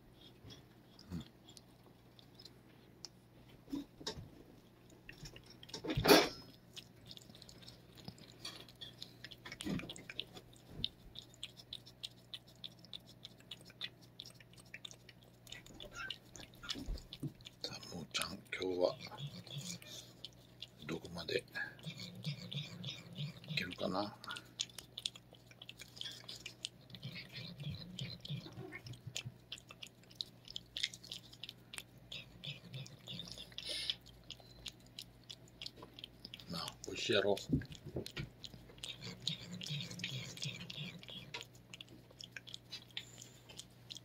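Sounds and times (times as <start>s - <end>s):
cat licking: 0.0s - 44.0s.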